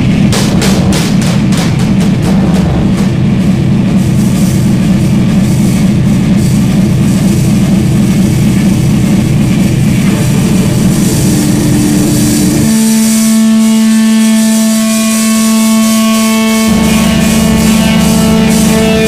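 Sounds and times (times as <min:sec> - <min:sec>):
distorted low drone: 0:00.0 - 0:19.0
sustained held note: 0:10.1 - 0:19.0.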